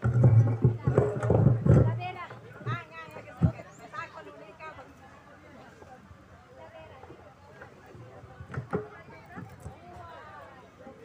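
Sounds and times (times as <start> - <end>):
acoustic guitar: 0.0 - 3.6.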